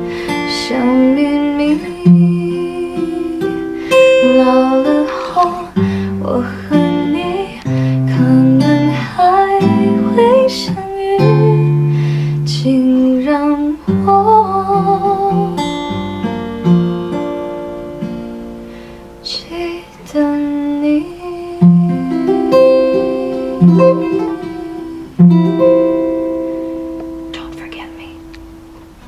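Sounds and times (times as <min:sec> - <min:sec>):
fingerpicked acoustic guitar: 0:00.0 - 0:29.0.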